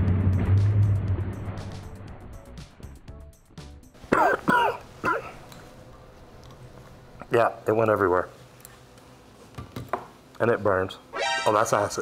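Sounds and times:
air blast with low rumble: 0.0s - 3.1s.

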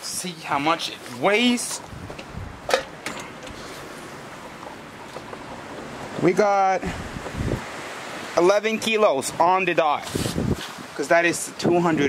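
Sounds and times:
outdoor wind rush: 0.0s - 12.0s.

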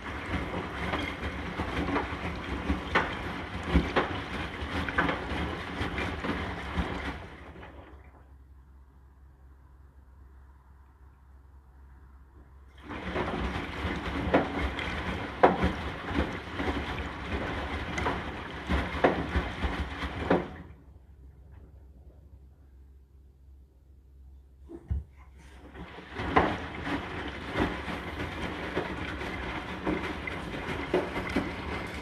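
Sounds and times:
washing machine drum turning: 0.0s - 8.0s, 12.8s - 20.8s, 24.7s - 32.0s
wet laundry sloshing: 0.0s - 8.5s, 12.7s - 21.7s, 24.7s - 32.0s.

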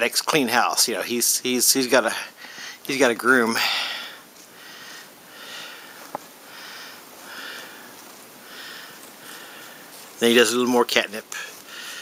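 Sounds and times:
cat sniffing breaths: 2.4s - 2.8s, 3.6s - 10.0s, 11.4s - 12.0s.

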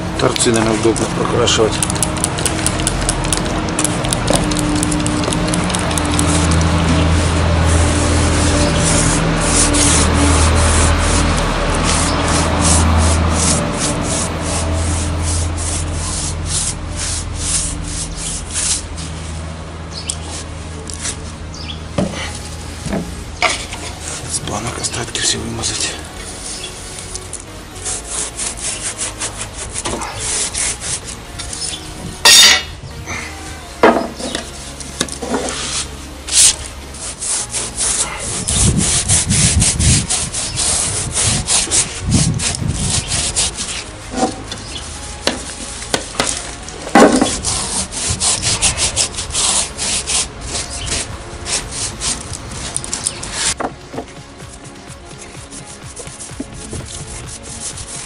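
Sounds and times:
paintbrush scrubbing wood: 0.0s - 31.8s, 34.0s - 58.0s.

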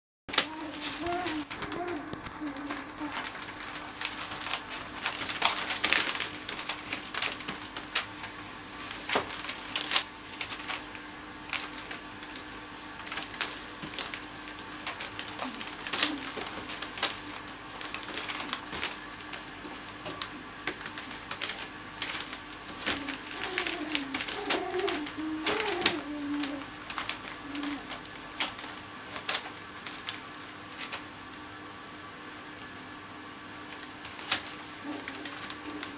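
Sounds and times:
newspaper crinkling and rustling: 0.3s - 31.6s, 33.6s - 35.9s
puppy squeaky whines: 23.3s - 26.5s.

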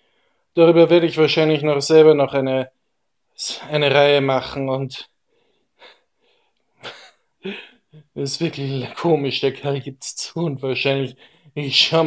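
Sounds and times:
man breathing: 0.0s - 0.5s, 5.2s - 6.8s, 11.2s - 11.6s.

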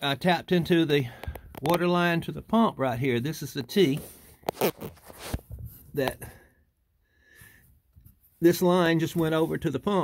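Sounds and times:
handling noises near microphone: 3.4s - 6.3s.

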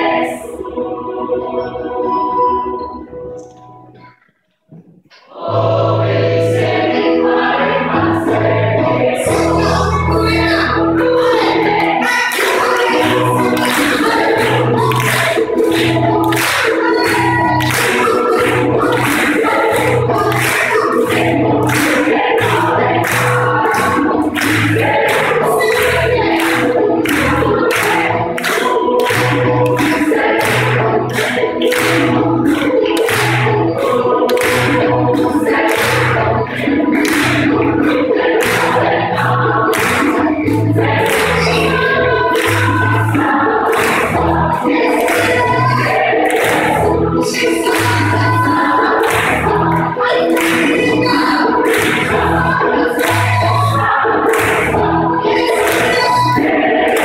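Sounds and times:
gospel choir singing: 0.0s - 3.7s, 5.1s - 57.0s
rhythmic hand-clapping: 11.5s - 57.0s.

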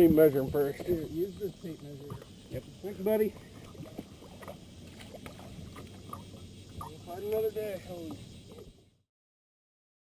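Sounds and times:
water sloshing against boat: 0.0s - 8.9s.

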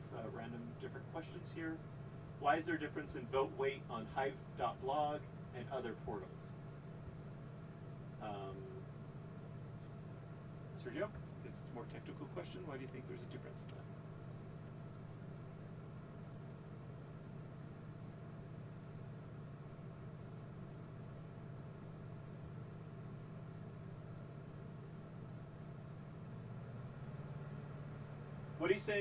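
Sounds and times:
low electrical hum: 0.0s - 29.0s.

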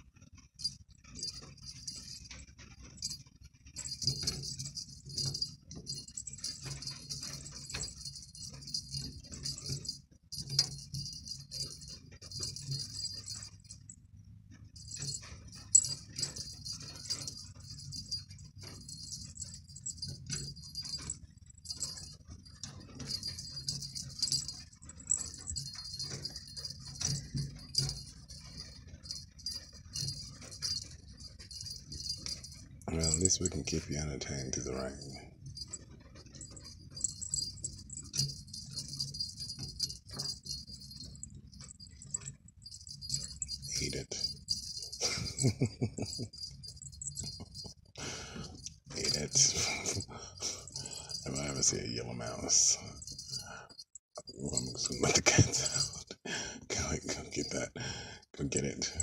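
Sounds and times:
cat toy bell jingling: 0.6s - 14.1s, 14.7s - 56.1s.

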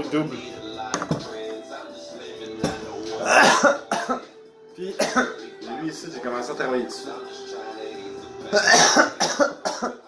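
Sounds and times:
background music: 0.0s - 10.0s
man coughing: 3.2s - 4.3s, 5.0s - 5.4s, 8.5s - 10.0s.

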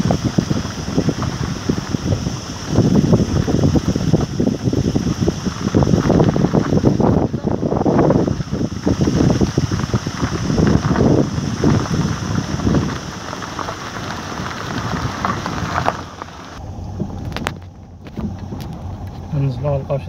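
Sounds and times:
tyres crunching over gravel: 0.0s - 20.0s.

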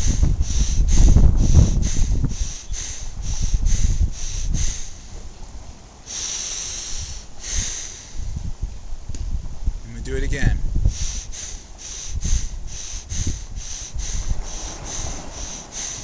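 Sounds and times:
man breathing hard and fast: 0.0s - 5.3s, 6.0s - 8.5s, 10.8s - 16.0s
wind on microphone rumble: 0.0s - 5.8s, 6.8s - 16.0s.

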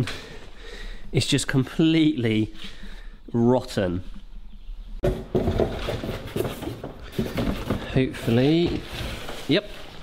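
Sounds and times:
cardboard box rustling and scraping: 5.3s - 10.0s.

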